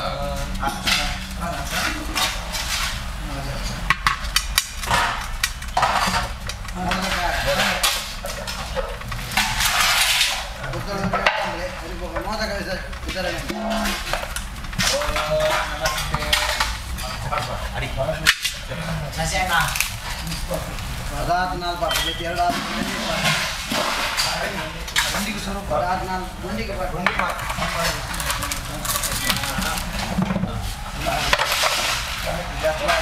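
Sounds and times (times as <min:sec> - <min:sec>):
people's voices: 0:00.0 - 0:04.0, 0:05.9 - 0:33.0
steel pots and plates clattering: 0:00.0 - 0:20.7, 0:21.6 - 0:33.0.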